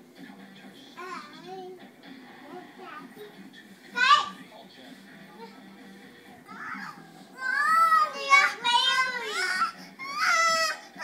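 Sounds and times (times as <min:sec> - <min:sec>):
child crying with high-pitched wails: 0:06.6 - 0:08.3.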